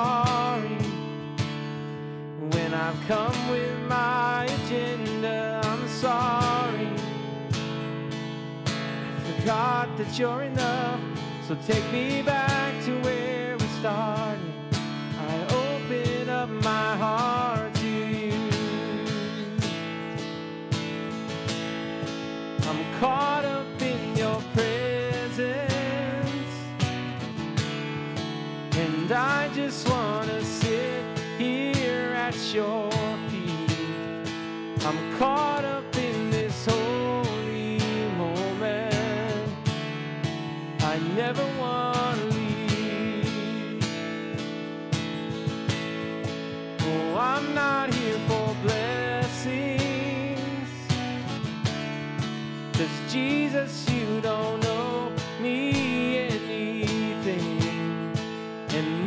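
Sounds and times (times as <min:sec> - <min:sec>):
man singing: 0:00.0 - 0:20.8, 0:22.6 - 0:27.7, 0:28.5 - 0:45.4, 0:46.7 - 0:59.0
acoustic guitar strumming: 0:00.0 - 0:59.0
cajon beat: 0:00.0 - 0:59.0.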